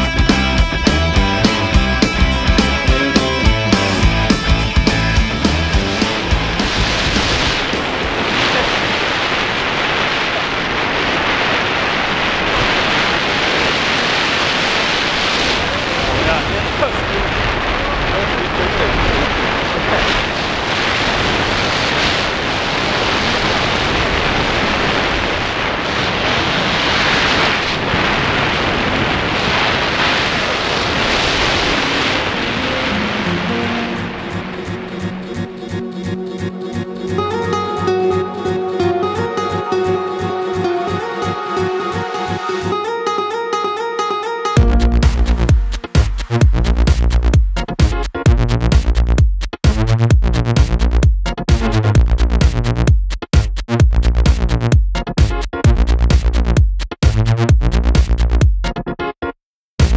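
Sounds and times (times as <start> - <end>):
music: 0.0 - 8.6, 31.6 - 59.9
wind rushing over microphone: 5.2 - 36.6.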